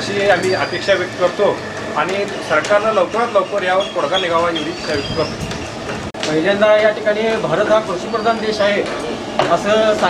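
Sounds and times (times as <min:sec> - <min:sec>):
man speaking: 0:00.0 - 0:05.4, 0:06.2 - 0:10.0
steady background noise: 0:00.0 - 0:10.0.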